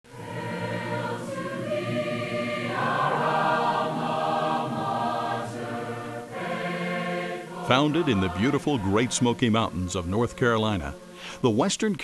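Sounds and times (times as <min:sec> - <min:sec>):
choir singing sustained chords: 0:00.1 - 0:11.7.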